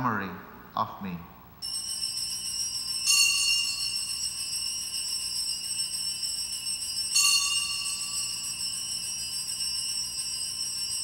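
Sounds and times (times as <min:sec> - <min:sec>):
small bells jingling: 0:01.6 - 0:11.0.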